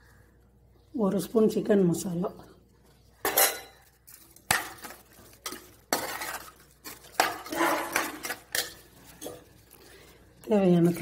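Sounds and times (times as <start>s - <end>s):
spoon scraping metal pot: 3.2s - 9.6s.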